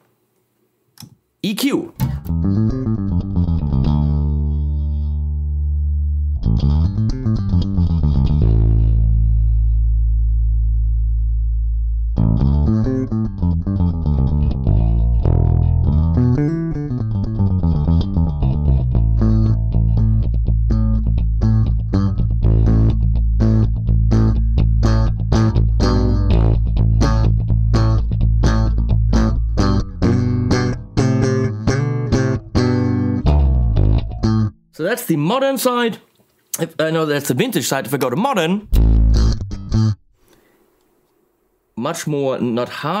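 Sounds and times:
electric bass plucked notes: 2.0 - 34.8, 38.6 - 40.2.

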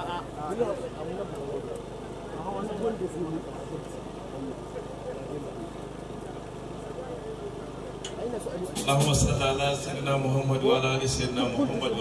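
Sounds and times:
low electrical hum: 0.0 - 12.0
people chattering: 0.0 - 12.0.

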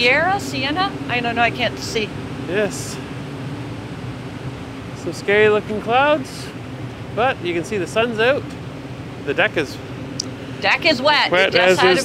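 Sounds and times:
ship machinery humming: 0.0 - 12.0.

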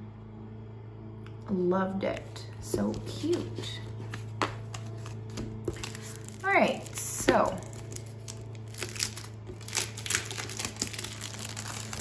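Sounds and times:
steady low hum: 0.0 - 12.0
cellophane crinkling: 2.9 - 12.0.

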